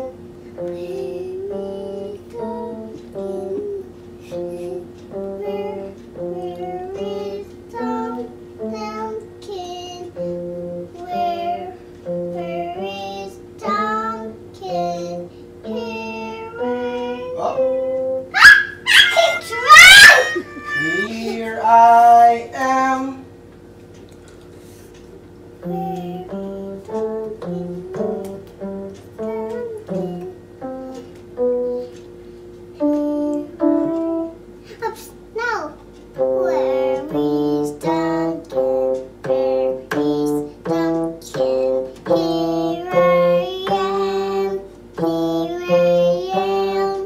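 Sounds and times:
child singing: 0.0 - 18.0, 19.0 - 23.2, 25.6 - 28.4, 29.2 - 32.0, 36.2 - 47.0.

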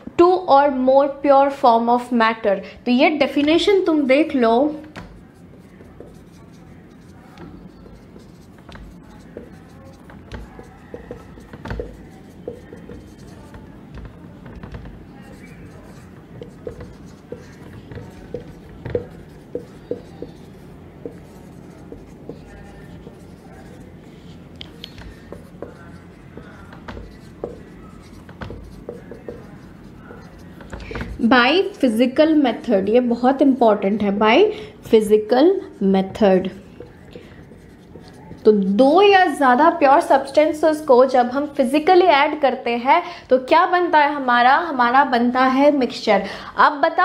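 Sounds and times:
marker writing on whiteboard: 3.3 - 32.0, 35.8 - 39.2.

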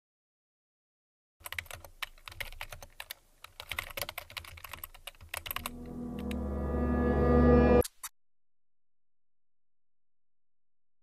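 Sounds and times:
keyboard typing: 1.4 - 6.4
low sustained musical chord: 5.6 - 7.8.

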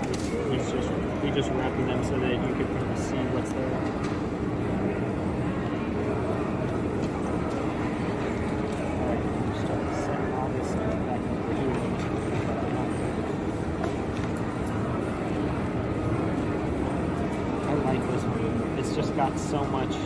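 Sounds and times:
babble of many voices: 0.0 - 20.0.

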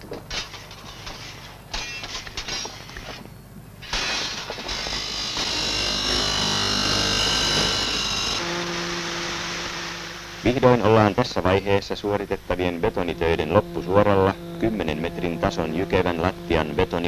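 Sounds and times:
steady low hum: 0.0 - 17.0
angle grinder cutting steel: 3.8 - 11.2, 12.0 - 17.0.

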